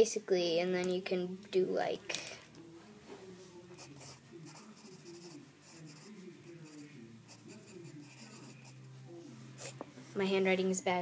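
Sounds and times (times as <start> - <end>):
pencil scratching on paper: 3.7 - 8.8.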